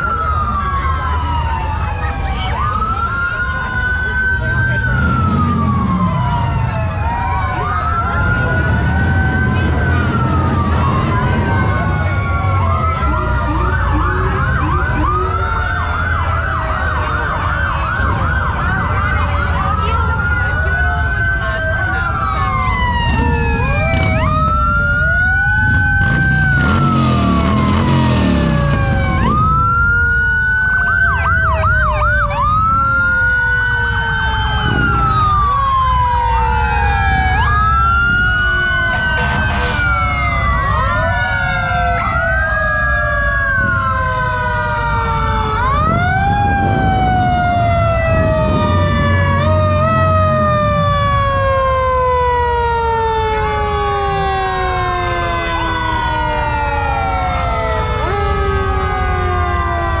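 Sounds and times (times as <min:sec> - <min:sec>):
fire truck sirens: 0:00.0 - 1:00.0
truck engines rumbling: 0:00.0 - 1:00.0.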